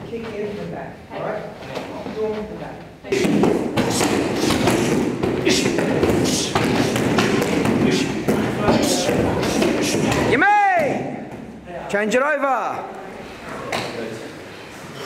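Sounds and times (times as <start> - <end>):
voices and shouts: 7.5 - 11.3.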